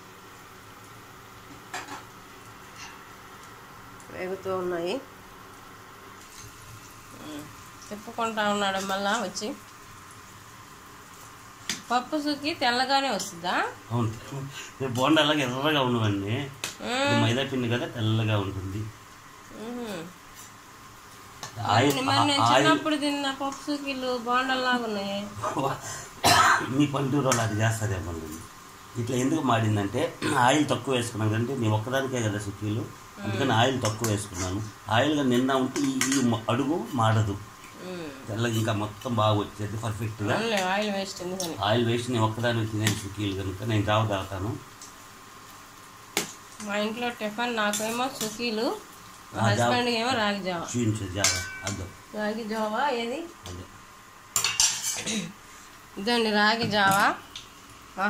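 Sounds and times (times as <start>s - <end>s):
dumplings frying in oil: 0.0s - 58.0s
man murmuring: 16.8s - 17.5s, 33.2s - 33.7s
loud cough: 26.2s - 26.7s.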